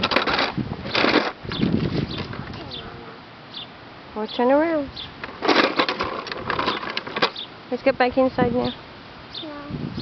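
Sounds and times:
plastic wheels rattling on asphalt: 0.0s - 2.5s, 5.2s - 7.4s.

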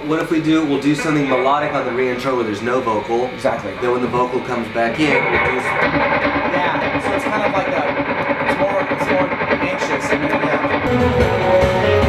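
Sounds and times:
electric guitar picking a melody: 5.0s - 12.0s.

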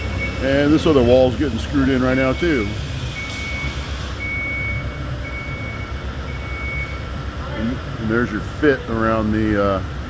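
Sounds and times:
backup alarm beeps: 0.0s - 7.2s
low engine rumble: 0.0s - 10.0s.

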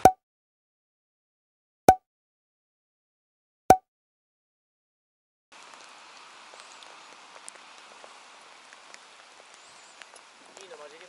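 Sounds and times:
light rain on water: 5.5s - 11.0s.

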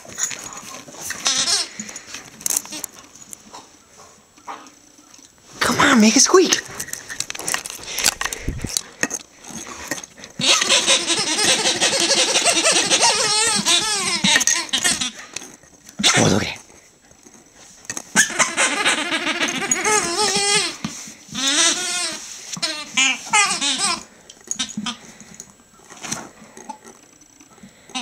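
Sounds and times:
rubber squeaky toy squeaking: 1.2s - 1.7s, 10.4s - 15.3s, 18.1s - 25.0s.

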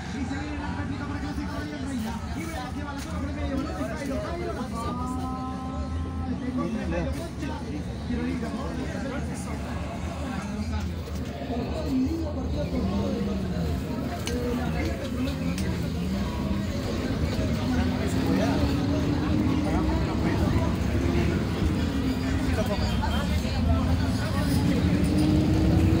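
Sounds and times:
road noise: 0.0s - 26.0s
bus engine rumble: 8.2s - 26.0s.

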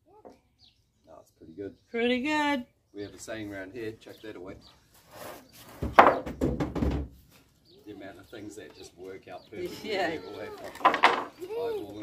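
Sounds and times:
wooden frame thunk on concrete: 5.7s - 7.2s, 10.6s - 11.4s
small wooden knocks: 5.8s - 7.2s, 10.6s - 11.4s.

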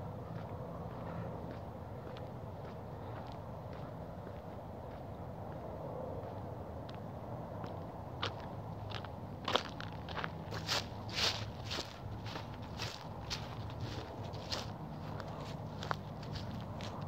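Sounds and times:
footsteps walking outdoors: 0.0s - 17.0s.

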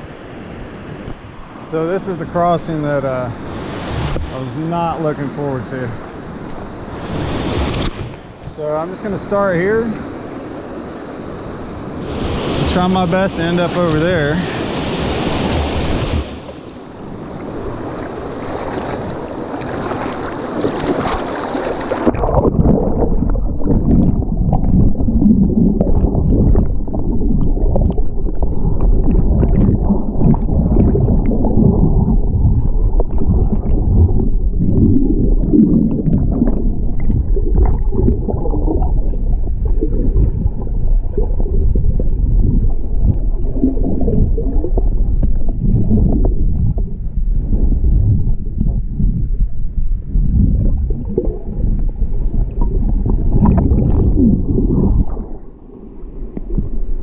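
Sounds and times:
underwater rumble of rushing water: 0.0s - 57.0s
water gurgling: 0.0s - 57.0s.

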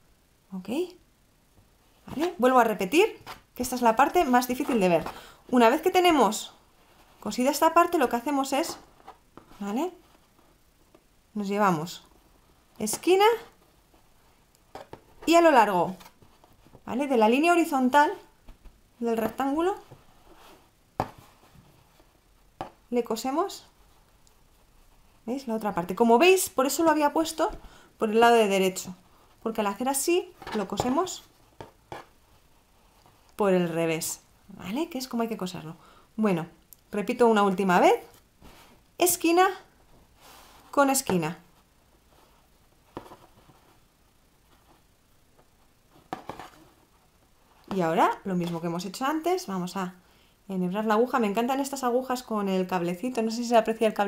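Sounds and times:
soft fabric handling: 1.5s - 34.0s, 37.3s - 49.6s.

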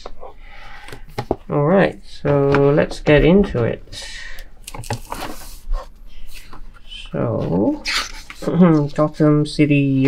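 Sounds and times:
book pages turning: 4.6s - 9.2s.

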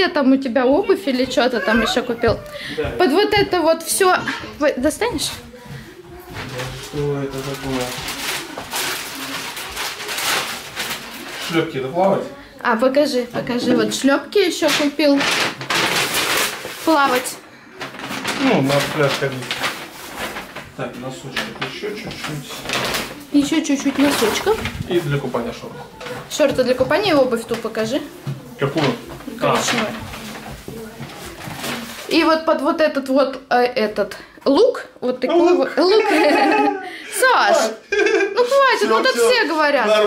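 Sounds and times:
plastic bag rustling: 0.8s - 12.4s, 13.0s - 33.0s.

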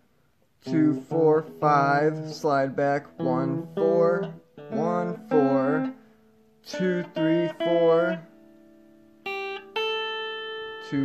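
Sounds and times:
electric guitar notes picked: 0.6s - 11.0s.

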